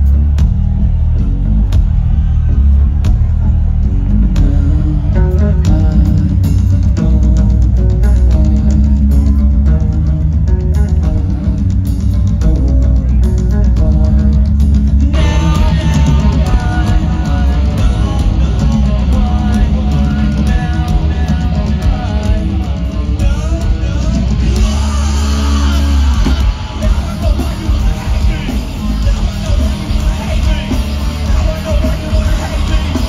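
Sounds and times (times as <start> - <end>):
distorted guitar and bass riff: 0.0 - 33.0
drums and cymbals: 0.0 - 33.0.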